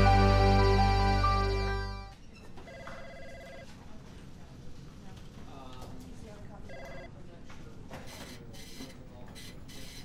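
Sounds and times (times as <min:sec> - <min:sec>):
office room noise: 0:02.1 - 0:10.0
desk telephone ringing: 0:02.7 - 0:03.7, 0:06.7 - 0:07.1.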